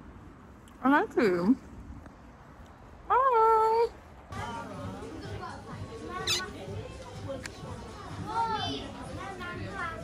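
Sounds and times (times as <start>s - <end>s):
faint voices: 3.1s - 10.0s.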